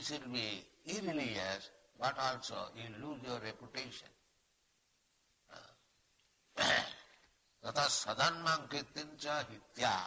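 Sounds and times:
man clearing his throat: 6.6s - 7.1s.

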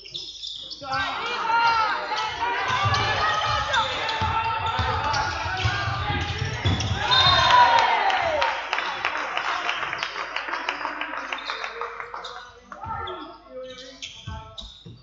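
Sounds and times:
sneakers squeaking: 0.0s - 7.8s, 11.3s - 15.0s
voices calling: 0.0s - 14.8s
players running: 1.0s - 9.2s
basketball dribbling: 2.1s - 7.3s.

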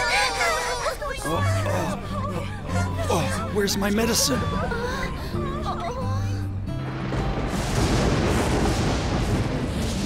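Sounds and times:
dramatic background music: 1.3s - 10.0s
thunder rumble: 6.7s - 10.0s.

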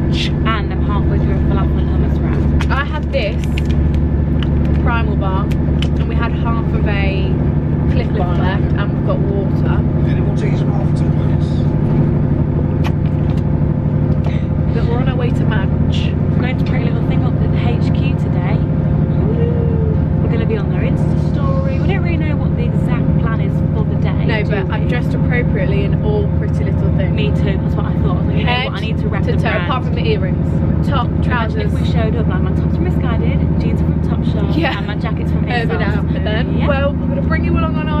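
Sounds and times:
people talking: 0.0s - 3.7s, 4.4s - 11.8s, 14.2s - 38.0s
moving train hum and rumble: 0.0s - 38.0s.

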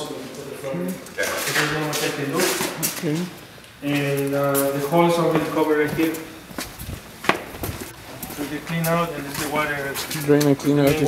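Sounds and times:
footsteps on concrete: 0.9s - 11.0s.

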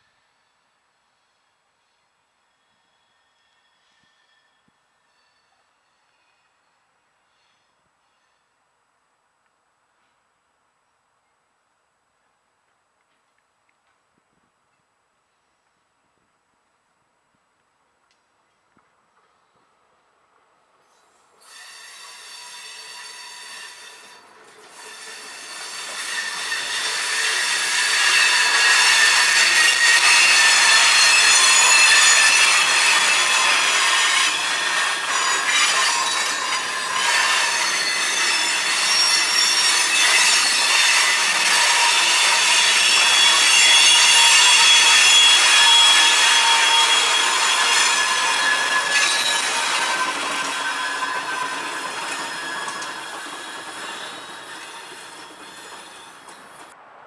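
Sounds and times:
steel wheels squealing on rails: 0.0s - 8.7s, 20.8s - 56.8s
freight train cars rolling: 19.0s - 57.0s.

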